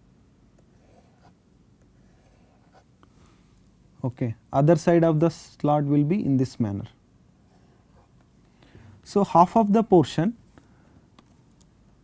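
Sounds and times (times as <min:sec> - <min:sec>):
stylus scratching on tablet screen: 0:00.6 - 0:01.4, 0:02.0 - 0:02.9.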